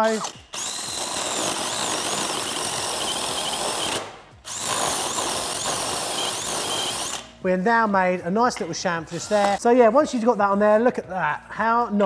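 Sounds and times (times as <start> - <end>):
cordless drill whirring: 0.0 - 7.3.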